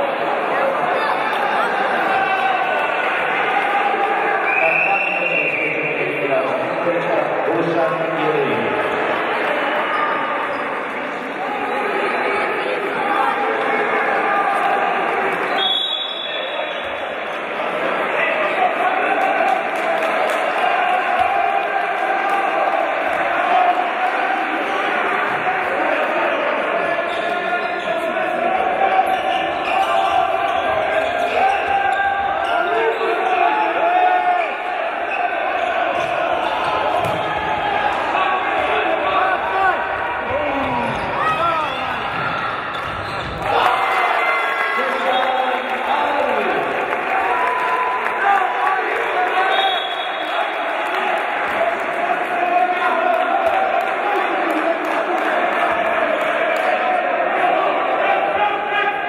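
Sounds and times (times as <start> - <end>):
overlapping voices: 16.5 - 59.0
ball bouncing on wooden court: 37.0 - 37.4.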